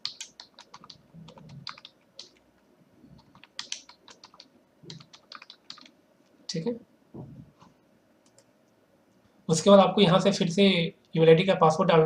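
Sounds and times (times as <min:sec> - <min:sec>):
computer keyboard typing: 0:00.0 - 0:02.4, 0:03.2 - 0:06.0.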